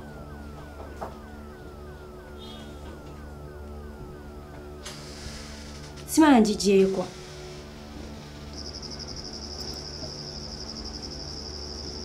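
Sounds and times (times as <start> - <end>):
falling synth notes: 0.0 - 12.0
low sustained tones: 0.0 - 12.0.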